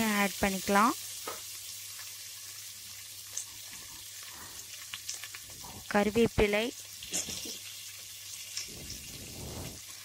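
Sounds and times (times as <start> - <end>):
food sizzling in hot oil: 0.0 - 10.0
faint crackles: 2.9 - 6.0.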